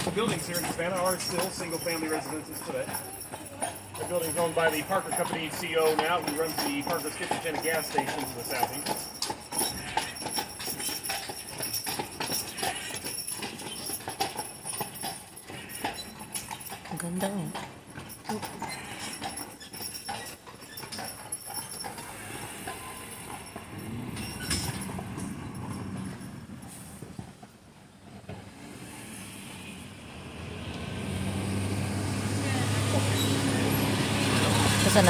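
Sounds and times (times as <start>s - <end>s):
horse hooves clip-clopping: 0.0s - 35.0s
motor vehicle engine hum: 22.0s - 35.0s.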